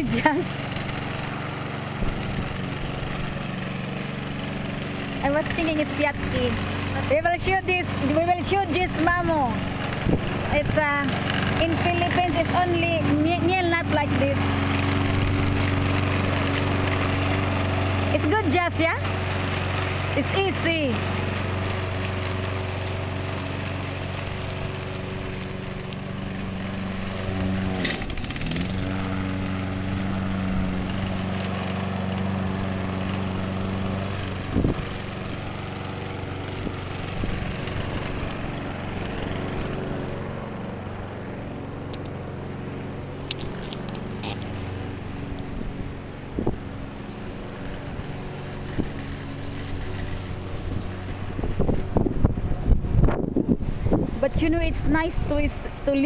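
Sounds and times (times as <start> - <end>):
lawn mower cutting grass: 0.0 - 56.0.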